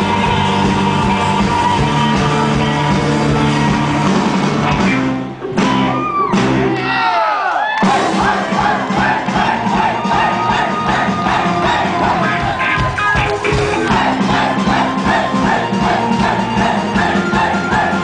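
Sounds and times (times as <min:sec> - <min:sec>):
crowd cheering and shouting: 0:00.0 - 0:18.0
live synth-pop band playing: 0:00.0 - 0:18.0.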